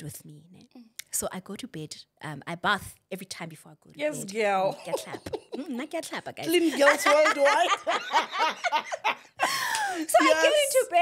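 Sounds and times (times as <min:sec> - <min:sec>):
woman laughing: 0:04.7 - 0:10.4.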